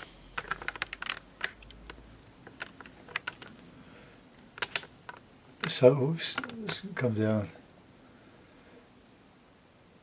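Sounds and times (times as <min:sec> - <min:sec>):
light handling clicks and taps: 0:04.6 - 0:06.8.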